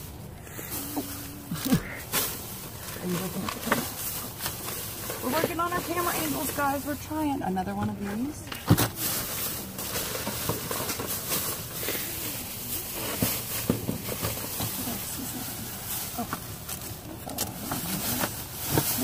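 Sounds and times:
plastic bags rustling: 0.0 - 19.0.

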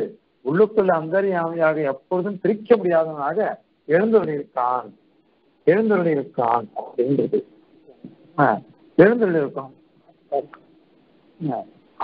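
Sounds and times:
man speaking: 0.0 - 5.0, 5.6 - 10.6, 11.4 - 12.0.

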